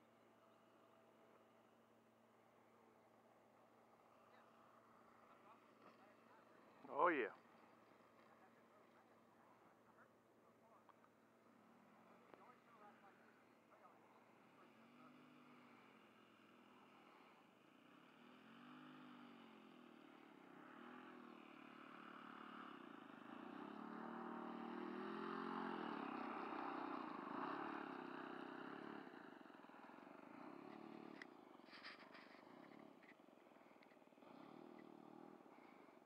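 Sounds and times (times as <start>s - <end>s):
model airplane engine: 0.0s - 36.0s.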